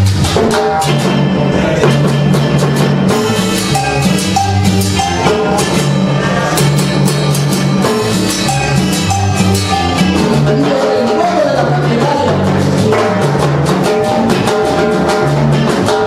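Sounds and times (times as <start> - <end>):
congas and timbales: 0.0 - 16.0
cumbia band playing: 0.0 - 16.0
electric bass line: 0.0 - 16.0
keyboard chords: 0.0 - 16.0.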